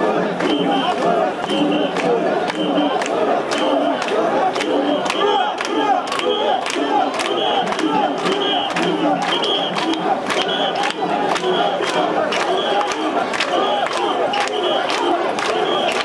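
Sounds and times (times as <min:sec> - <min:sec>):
crowd shouting rhythmic chant: 0:00.0 - 0:16.0
sharp hand claps: 0:00.3 - 0:16.0.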